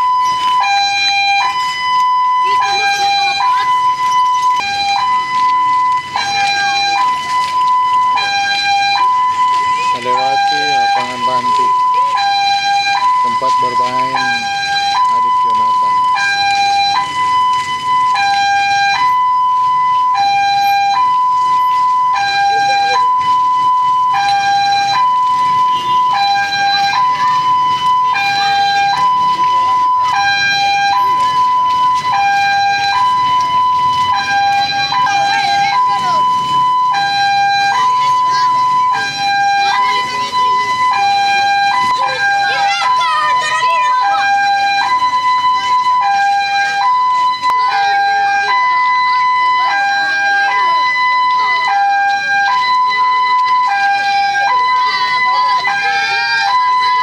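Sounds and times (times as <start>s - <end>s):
crowd voices: 0.0s - 57.0s
two-tone siren: 0.0s - 57.0s.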